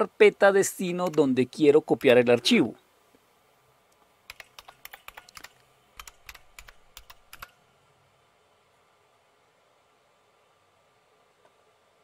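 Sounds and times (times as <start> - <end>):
keyboard keys tapping: 4.3 - 7.5.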